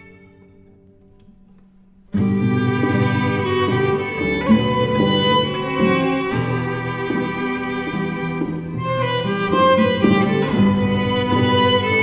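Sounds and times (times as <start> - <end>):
violin and guitar music: 0.0 - 12.0.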